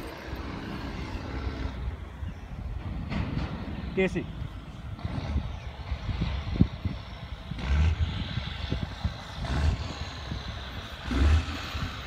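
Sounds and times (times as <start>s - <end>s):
diesel truck engine rumbling: 0.0s - 12.0s.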